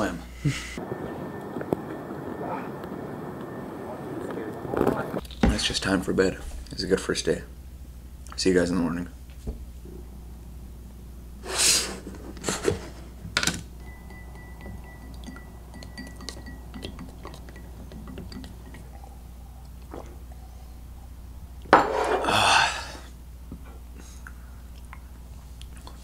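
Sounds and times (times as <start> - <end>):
glassware clinking: 13.8 - 19.3, 21.7 - 22.2.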